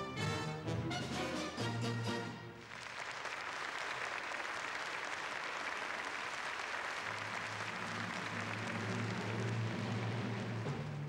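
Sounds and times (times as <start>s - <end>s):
orchestra playing: 0.0s - 2.7s
audience applauding: 2.6s - 11.0s.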